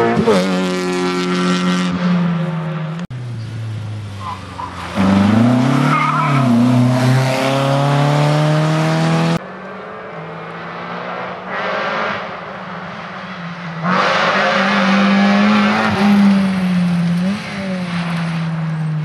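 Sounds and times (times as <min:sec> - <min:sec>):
rally car engine accelerating: 0:04.8 - 0:12.4
car passing at high revs: 0:04.8 - 0:18.8.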